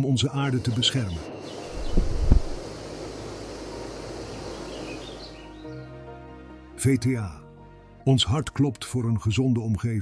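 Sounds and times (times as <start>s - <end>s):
faint bird chirps: 0.3s - 6.0s
waterfall rushing: 1.2s - 5.6s
low thump: 1.8s - 2.6s
soft music chord: 2.6s - 9.4s.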